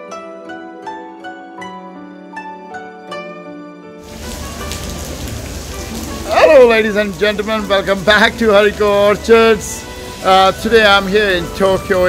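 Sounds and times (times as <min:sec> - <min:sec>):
plucked harp-like music: 0:00.0 - 0:04.0
heavy rain hissing: 0:04.0 - 0:12.0.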